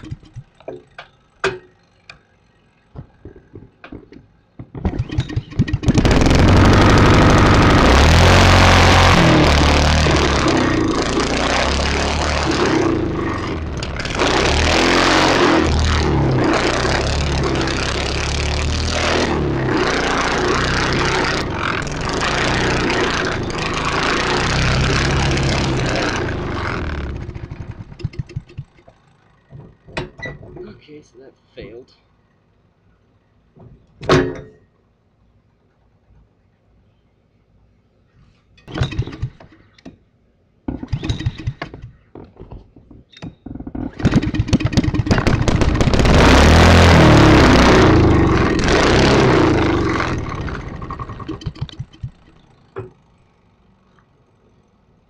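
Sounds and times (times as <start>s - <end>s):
go-kart engine revving: 0.0s - 4.1s, 4.7s - 30.0s, 38.7s - 39.6s, 40.7s - 41.8s, 43.8s - 53.2s.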